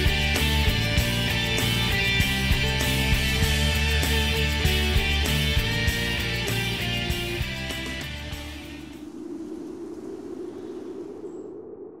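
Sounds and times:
guitar music: 0:00.0 - 0:08.9
low hum: 0:08.3 - 0:12.0.

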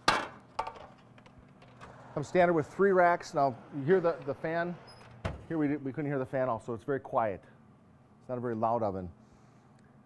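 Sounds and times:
oven fan hum: 0:00.0 - 0:10.0.

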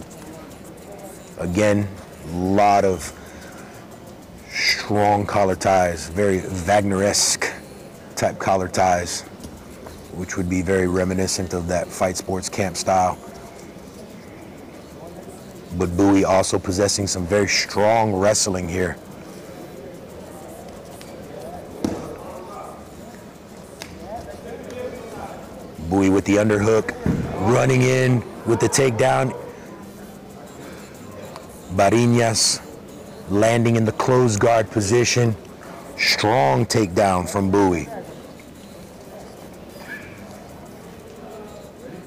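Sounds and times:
faint hall ambience: 0:00.0 - 0:42.0
murmur of faint voices: 0:00.0 - 0:42.0.

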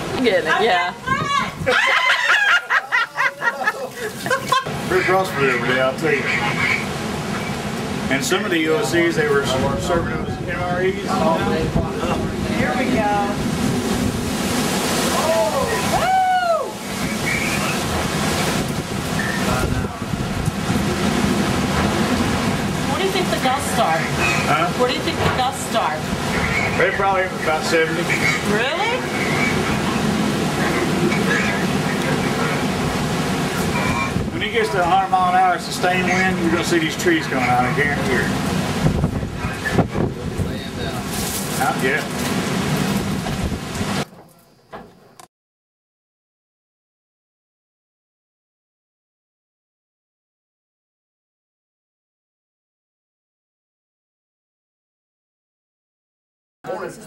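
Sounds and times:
wind buffeting microphone: 0:00.0 - 0:01.8, 0:04.6 - 0:44.1
strong wind through trees: 0:00.0 - 0:44.1.

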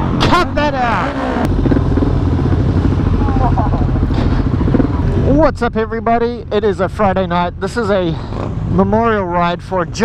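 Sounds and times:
motorcycle engines rumbling: 0:00.0 - 0:10.0.

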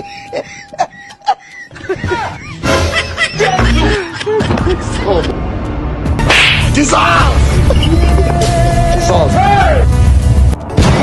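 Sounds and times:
background music: 0:00.0 - 0:11.0
slap: 0:06.2 - 0:06.7.

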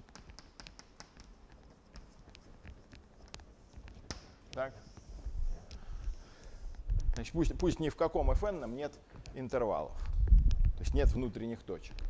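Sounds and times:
chalk writing on blackboard: 0:00.1 - 0:06.8.

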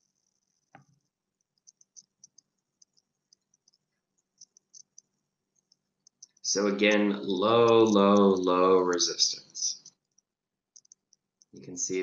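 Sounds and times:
faint high-pitched ticks: 0:00.0 - 0:12.0.

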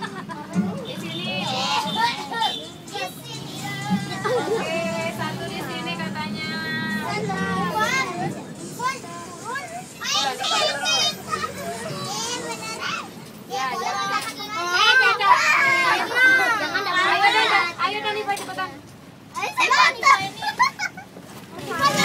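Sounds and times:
children chattering and calling out: 0:00.0 - 0:22.0.

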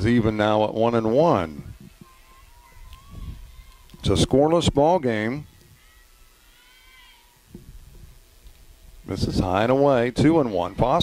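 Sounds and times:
distant high-pitched shout: 0:02.0 - 0:04.0, 0:05.3 - 0:07.5.

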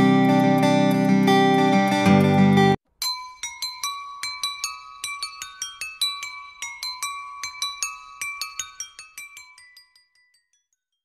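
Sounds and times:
bell-like chiming jingle: 0:03.0 - 0:11.0.

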